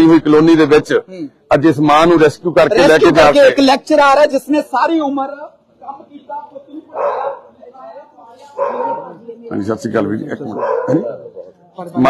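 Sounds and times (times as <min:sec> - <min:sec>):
people's voices: 0:00.0 - 0:12.0
dog barking: 0:06.9 - 0:07.6, 0:08.5 - 0:09.2, 0:10.5 - 0:11.6.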